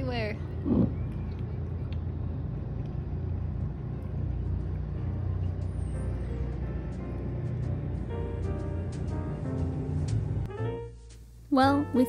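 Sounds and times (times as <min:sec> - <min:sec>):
low underwater rumble: 0:00.0 - 0:10.5
faint background music: 0:00.0 - 0:12.0.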